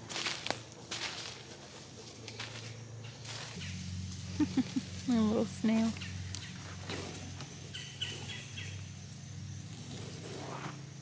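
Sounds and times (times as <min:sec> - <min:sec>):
bird chirps: 0:07.7 - 0:08.9.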